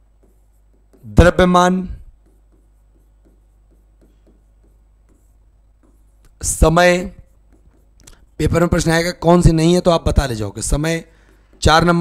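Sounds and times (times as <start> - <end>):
pen scratching on whiteboard screen: 0.0 - 12.0.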